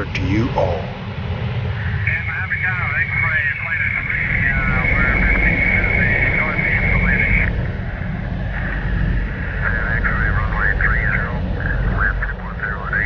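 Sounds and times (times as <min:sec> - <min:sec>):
high steady whine: 0:00.0 - 0:13.0
jet engines droning: 0:00.0 - 0:13.0.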